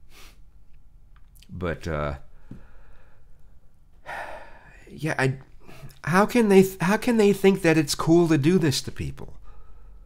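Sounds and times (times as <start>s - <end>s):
man breathing: 2.3s - 4.9s, 9.4s - 10.0s.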